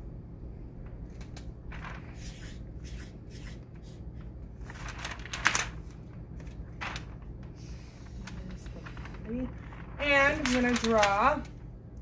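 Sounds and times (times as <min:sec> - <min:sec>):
marker scratching on paper: 0:02.0 - 0:04.2.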